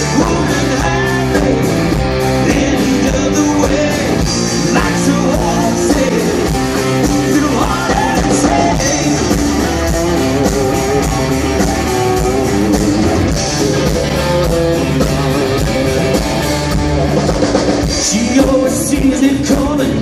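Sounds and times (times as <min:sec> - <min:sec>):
bass guitar: 0:00.0 - 0:20.0
drum kit: 0:00.0 - 0:20.0
electric guitars: 0:00.0 - 0:20.0.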